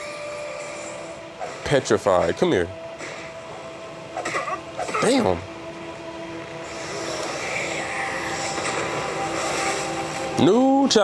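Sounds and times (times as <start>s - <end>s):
steady rushing roar: 0.0s - 11.0s.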